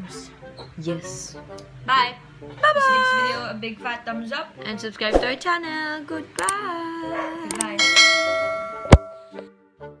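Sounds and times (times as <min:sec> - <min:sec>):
bell-like ding: 0:07.8 - 0:09.3.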